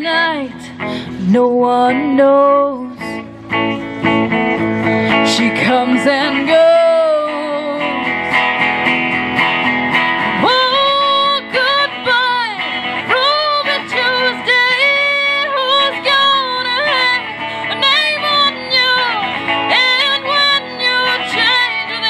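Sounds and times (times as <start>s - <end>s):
electric guitar: 0.0s - 22.0s.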